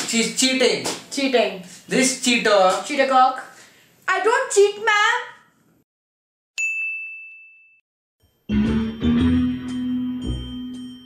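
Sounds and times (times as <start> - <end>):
bright ding: 6.6 - 7.8.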